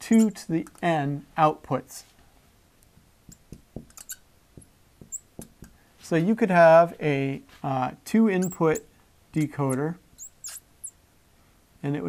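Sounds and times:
marker squeaking on a whiteboard: 0.0 - 0.9, 3.3 - 5.8, 8.4 - 11.0.

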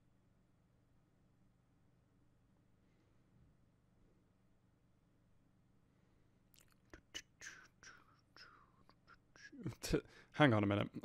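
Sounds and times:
mouth clicks: 6.5 - 9.5
faint whispering: 6.6 - 10.2.

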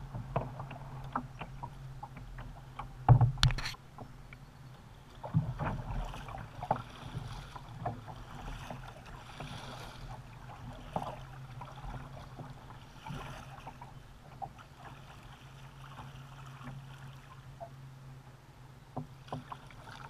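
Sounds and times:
paddle knocking plastic hull: 0.0 - 4.2, 5.2 - 15.1, 18.9 - 20.0
paddle blades splashing: 0.0 - 18.2, 18.8 - 20.0.

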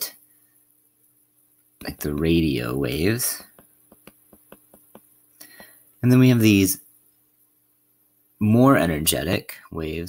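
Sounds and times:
stylus tapping on tablet screen: 3.4 - 5.8.

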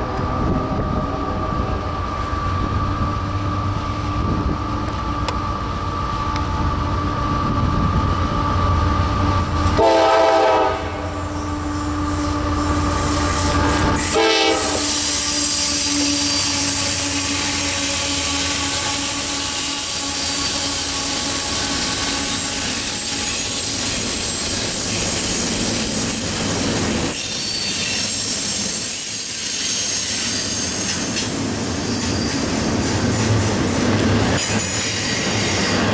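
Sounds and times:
diesel locomotives droning: 0.0 - 35.9
high-pitched wheel squeal: 14.9 - 25.2.

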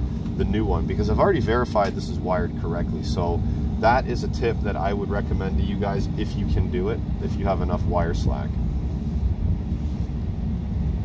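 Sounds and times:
faint steady hum: 0.0 - 11.0
low rumble: 0.0 - 11.0.

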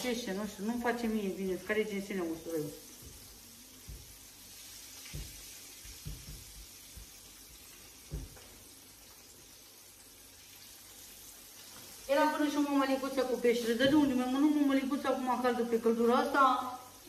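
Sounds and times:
fish sizzling in oil: 0.0 - 17.0
soft knocks: 8.1 - 8.4.

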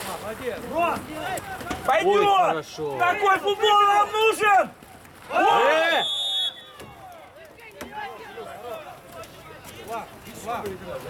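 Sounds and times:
shrill whistle blast: 5.9 - 6.8.

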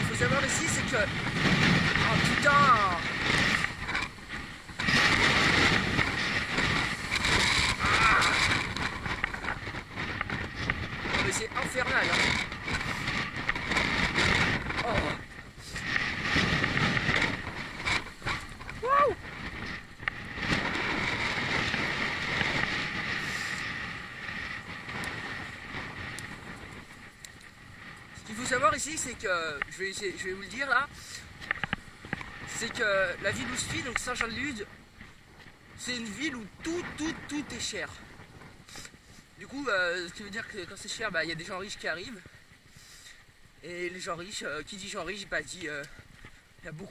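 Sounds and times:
wind buffeting microphone: 0.0 - 46.9
person speaking: 1.9 - 3.2, 11.1 - 12.5.

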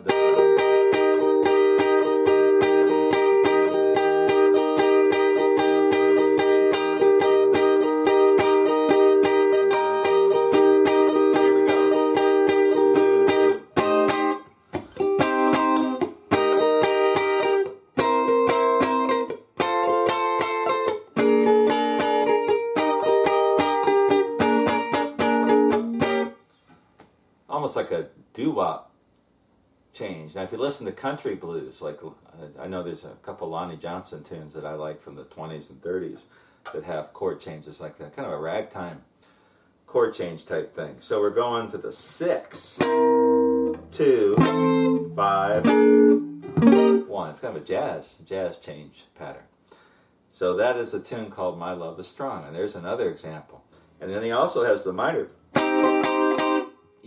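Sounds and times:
electric guitar strumming blues chords: 0.0 - 26.4, 42.5 - 47.2, 54.6 - 57.0.

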